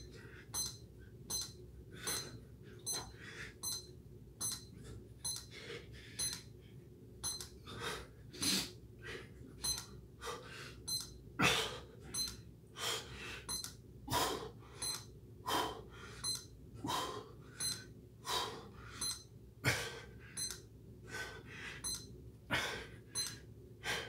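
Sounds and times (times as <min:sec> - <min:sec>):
man breathing hard: 0:01.9 - 0:03.6, 0:04.8 - 0:06.3, 0:07.6 - 0:09.4, 0:10.2 - 0:10.8, 0:12.7 - 0:13.5, 0:14.1 - 0:14.8, 0:15.4 - 0:19.0, 0:19.6 - 0:20.4, 0:21.0 - 0:21.8, 0:22.5 - 0:23.1, 0:23.8 - 0:24.0.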